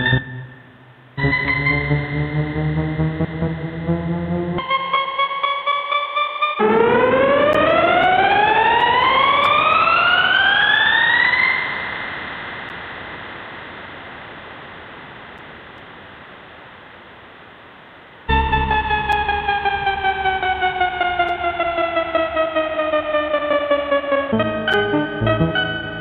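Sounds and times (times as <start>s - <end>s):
synthesizer tone gliding upward: 1.2s - 12.0s, 18.3s - 26.0s.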